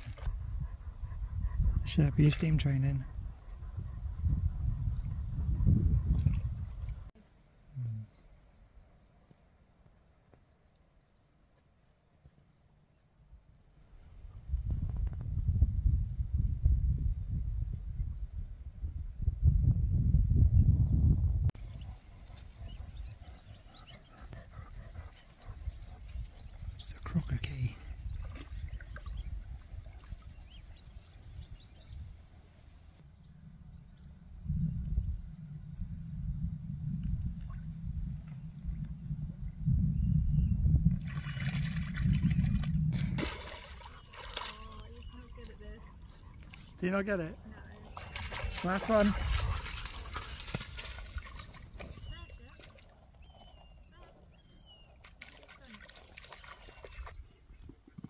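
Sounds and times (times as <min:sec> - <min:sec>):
water sloshing around dog: 0:21.6 - 0:31.3, 0:41.0 - 0:46.8, 0:47.4 - 0:57.7
low rumble: 0:32.0 - 0:43.8.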